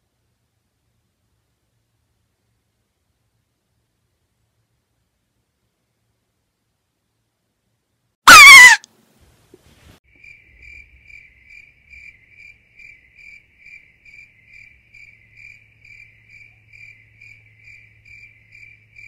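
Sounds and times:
loud shriek sliding downward: 0:08.3 - 0:08.9
cricket chirping: 0:10.1 - 0:19.0.

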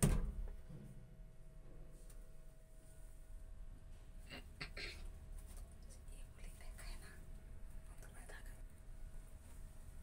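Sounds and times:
faint whispered voices: 0:05.8 - 0:08.7.

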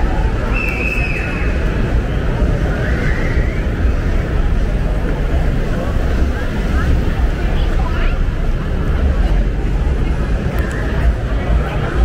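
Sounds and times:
people's voices: 0:00.0 - 0:12.0
road traffic rumble: 0:00.0 - 0:12.0.

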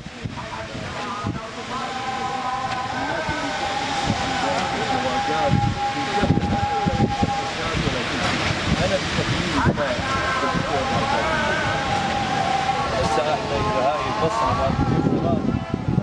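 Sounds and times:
construction machinery whining: 0:00.5 - 0:16.0
men talking: 0:02.9 - 0:16.0.

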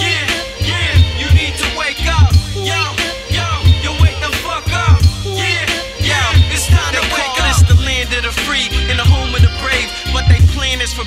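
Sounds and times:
deep pulsing bass kick: 0:00.0 - 0:11.0
rapping over a beat: 0:00.0 - 0:11.0.

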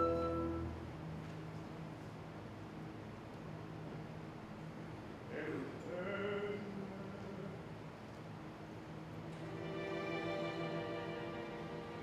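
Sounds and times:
opera singer singing: 0:05.3 - 0:07.7.

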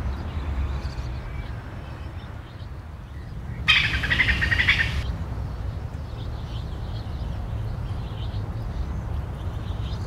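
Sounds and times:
bird chirping: 0:00.1 - 0:05.1.

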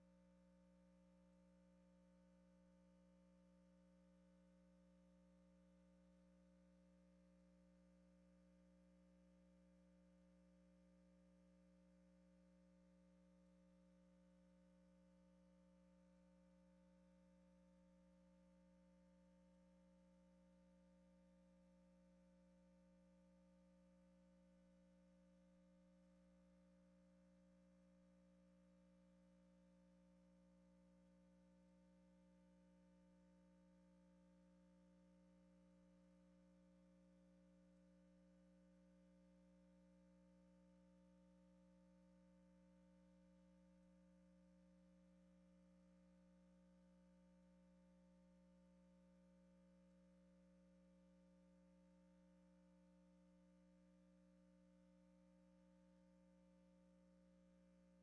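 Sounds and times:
faint steady hum: 0:00.0 - 0:58.0.

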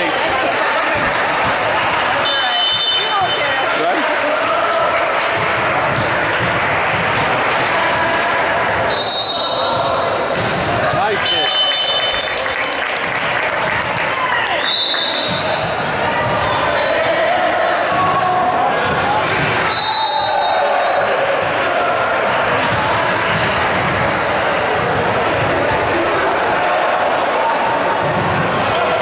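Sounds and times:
echoing voices and chatter: 0:00.0 - 0:29.0
volleyball hit and bouncing: 0:00.2 - 0:04.0, 0:05.0 - 0:12.4, 0:13.8 - 0:16.5, 0:17.8 - 0:19.9, 0:21.0 - 0:26.3, 0:28.0 - 0:29.0.

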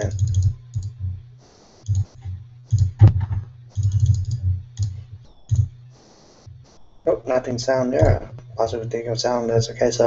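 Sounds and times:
keyboard typing: 0:00.0 - 0:06.8.

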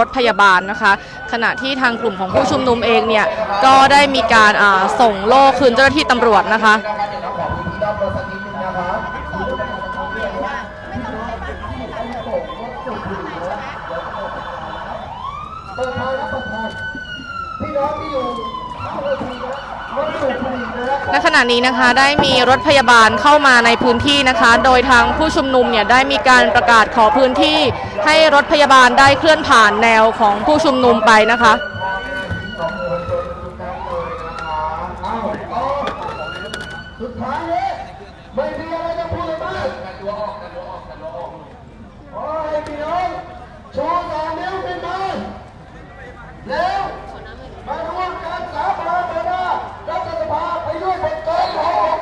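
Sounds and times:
ambulance siren wailing: 0:00.0 - 0:40.9, 0:46.4 - 0:52.0
murmur of crowd voices: 0:00.0 - 0:52.0.

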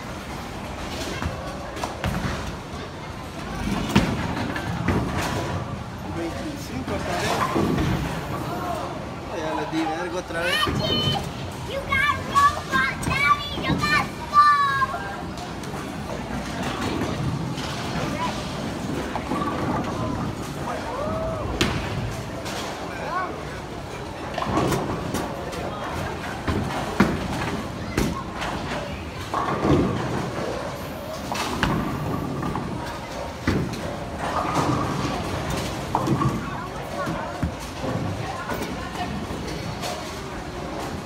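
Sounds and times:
child's voice: 0:10.4 - 0:15.1.

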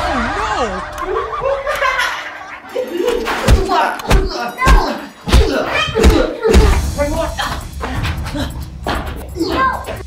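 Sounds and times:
wordless voices: 0:02.8 - 0:10.0.

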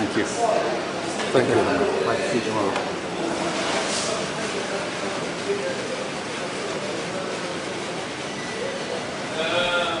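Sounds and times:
corridor background noise: 0:00.0 - 0:10.0.

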